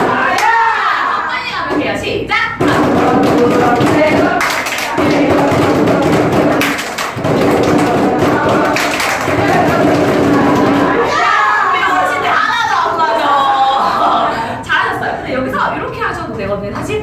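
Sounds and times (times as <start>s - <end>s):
group singing: 0.0s - 14.6s
hand claps and taps: 3.2s - 9.6s.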